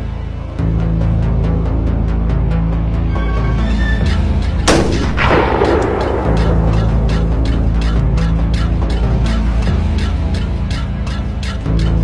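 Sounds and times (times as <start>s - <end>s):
low sustained music bed: 0.0s - 12.0s
blast with rumbling decay: 4.6s - 7.8s
sharp bang: 4.7s - 7.8s.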